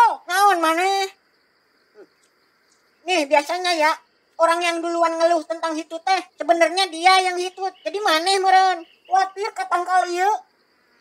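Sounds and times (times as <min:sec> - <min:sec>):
person speaking: 0:00.0 - 0:01.2, 0:03.0 - 0:10.5.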